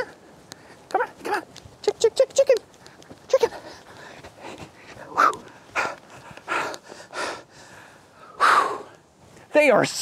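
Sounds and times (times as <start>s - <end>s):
man breathing hard: 3.6s - 9.1s.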